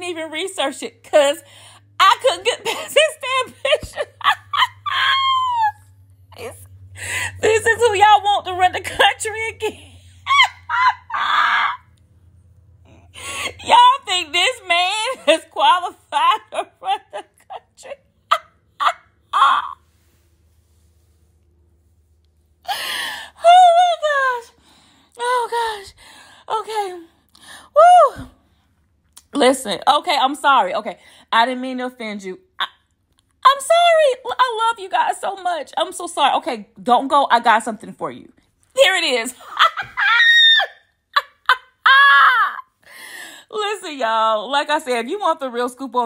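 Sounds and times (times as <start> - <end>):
woman breathing: 1.4 - 2.0, 6.7 - 7.4, 12.8 - 13.6, 22.6 - 23.4, 24.6 - 26.5, 27.2 - 27.8, 42.8 - 43.5
high-pitched squeal of laughter: 3.7 - 5.9, 10.2 - 11.9, 16.1 - 20.0, 39.4 - 42.7
woman exclaiming woo: 10.3 - 11.8, 18.8 - 19.8, 27.8 - 28.3.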